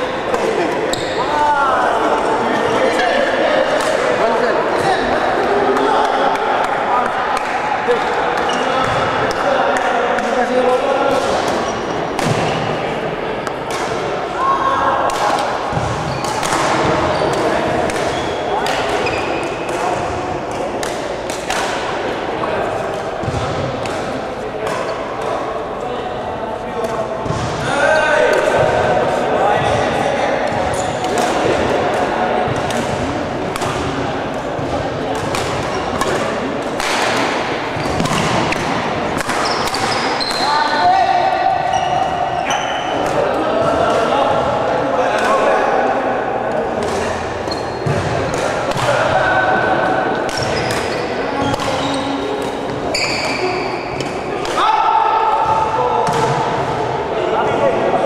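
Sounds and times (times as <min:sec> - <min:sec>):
background chatter: 0:00.0 - 0:58.0
rackets hitting shuttlecock: 0:11.1 - 0:12.6, 0:13.4 - 0:14.1, 0:15.0 - 0:25.6, 0:30.5 - 0:40.5, 0:42.9 - 0:44.1, 0:46.5 - 0:56.8.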